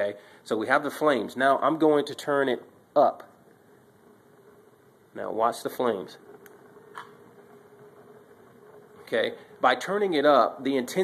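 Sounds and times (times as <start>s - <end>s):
computer fan blowing air: 0.0s - 11.0s.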